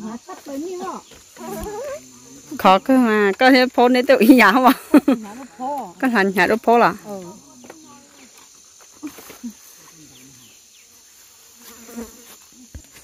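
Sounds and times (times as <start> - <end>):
high-pitched insect drone: 0.0 - 13.0.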